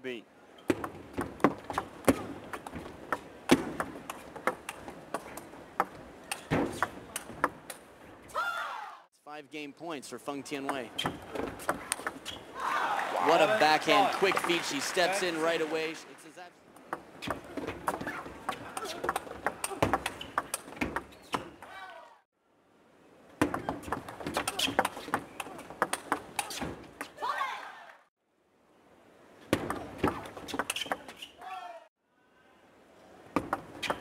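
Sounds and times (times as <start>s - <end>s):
arena crowd noise: 8.3s - 20.6s.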